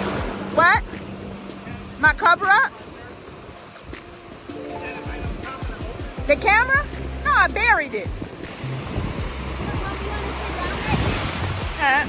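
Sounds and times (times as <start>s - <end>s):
background music: 0.0s - 12.0s
ocean surf rushing: 0.0s - 12.0s.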